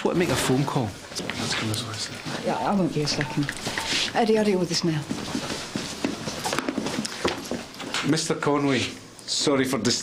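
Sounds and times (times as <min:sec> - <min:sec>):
room noise: 0:00.0 - 0:10.0
footsteps on hard floor: 0:04.8 - 0:08.0.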